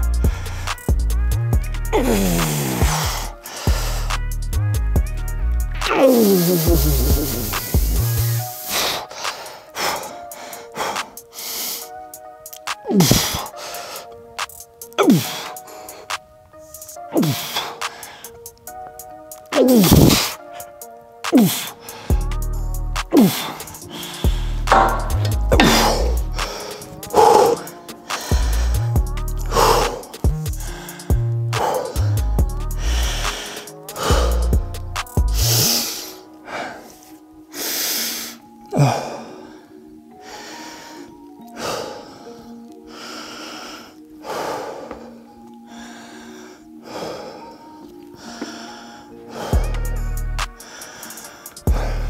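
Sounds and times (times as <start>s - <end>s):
music with heavy beat: 0.0s - 8.4s, 12.7s - 13.5s, 19.5s - 20.4s, 21.2s - 35.7s, 49.5s - 52.0s
man gasping heavily: 1.9s - 4.2s, 5.9s - 11.9s, 12.8s - 14.2s, 15.0s - 16.1s, 17.1s - 18.5s, 19.6s - 20.8s, 21.4s - 22.3s, 23.0s - 34.7s, 35.3s - 50.0s, 50.6s - 52.0s.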